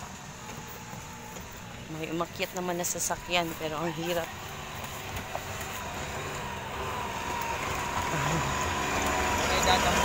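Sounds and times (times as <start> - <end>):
truck engine labouring: 0.0 - 10.0.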